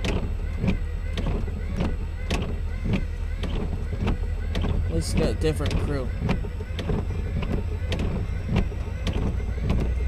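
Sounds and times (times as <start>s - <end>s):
low engine rumble: 0.0s - 10.0s
windshield wiper knocking: 0.0s - 10.0s.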